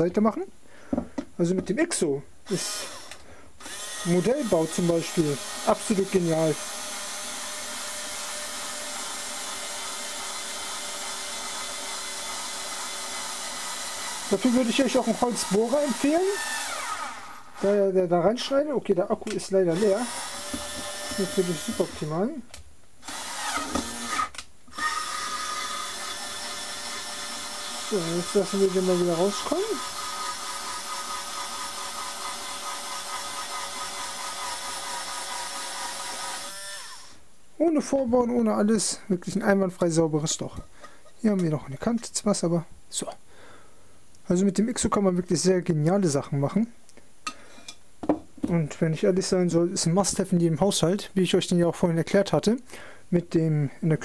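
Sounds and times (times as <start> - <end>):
cordless screwdriver drilling acrylic: 2.5 - 17.8, 19.7 - 22.2, 23.0 - 37.2.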